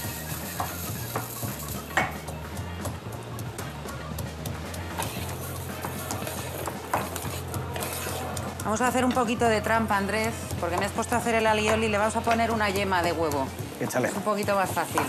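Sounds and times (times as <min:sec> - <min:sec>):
rice sizzling in hot oil: 0:00.0 - 0:02.4, 0:04.1 - 0:12.8, 0:13.7 - 0:15.0
background music: 0:00.0 - 0:15.0.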